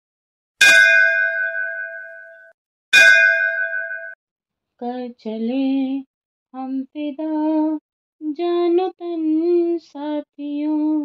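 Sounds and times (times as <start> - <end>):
bell-like chime ringing: 0.6 - 4.2.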